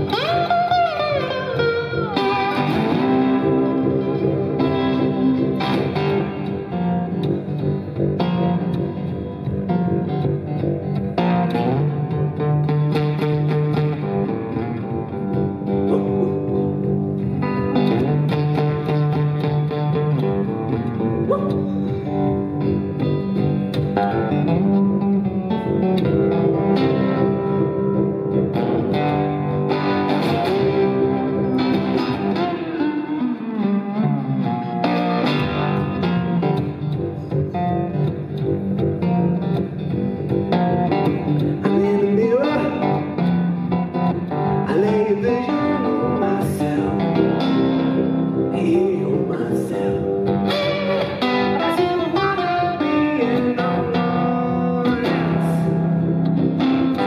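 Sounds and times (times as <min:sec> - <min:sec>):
blues guitar playing: 0:00.0 - 0:57.0.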